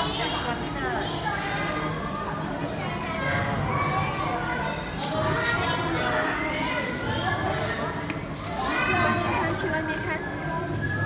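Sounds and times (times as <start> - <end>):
children calling and chattering: 0.0 - 11.0
crowd talking: 0.0 - 11.0.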